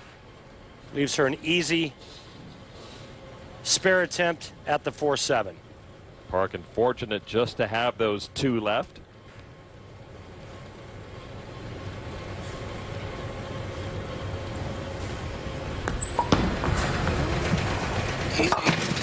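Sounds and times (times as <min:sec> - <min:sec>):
bowling ball rolling: 0:15.7 - 0:19.0
bowling ball hitting pins: 0:15.8 - 0:19.0.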